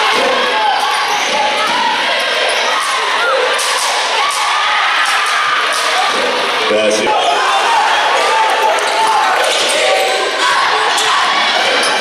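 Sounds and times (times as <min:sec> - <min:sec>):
crowd chatter and shouting: 0:00.0 - 0:12.0.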